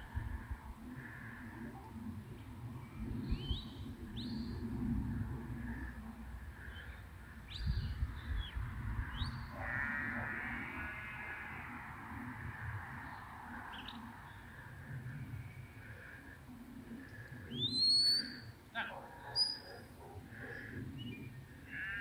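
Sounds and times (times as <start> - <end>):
wind rumble on microphone: 0.0 - 18.7.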